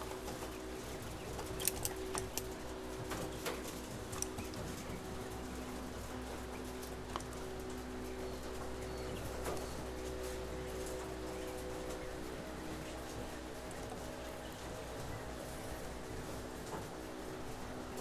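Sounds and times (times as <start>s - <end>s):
machine hum: 0.0s - 18.0s.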